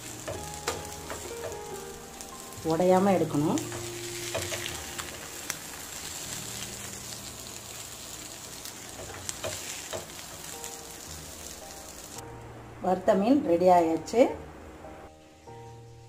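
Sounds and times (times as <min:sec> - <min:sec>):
fish sizzling in oil: 0:00.0 - 0:12.2.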